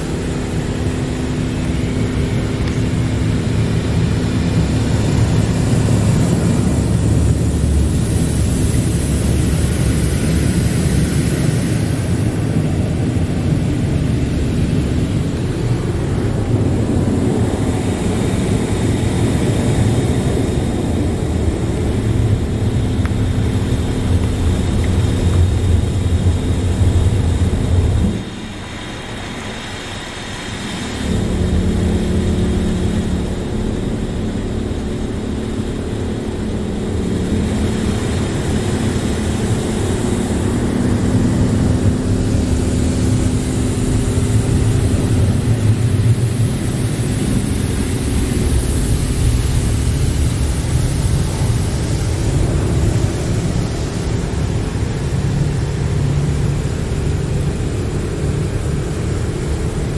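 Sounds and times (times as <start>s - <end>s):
car wash machine rumble: 0.0s - 59.9s.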